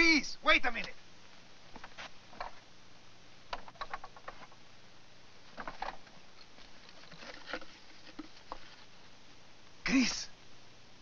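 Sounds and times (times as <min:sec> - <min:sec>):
faint knocks and scrapes: 0:01.7 - 0:02.7, 0:03.5 - 0:04.6, 0:05.4 - 0:09.2.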